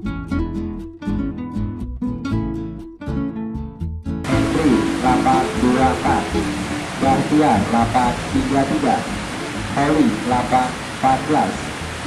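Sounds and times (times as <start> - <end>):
man talking: 4.3 - 11.8
steady background hiss: 4.3 - 12.0.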